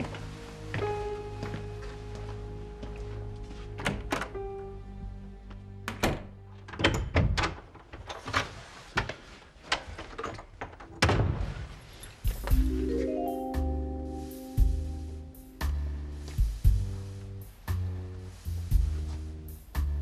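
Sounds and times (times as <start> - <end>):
soft background score: 0.0 - 8.5, 12.4 - 20.0.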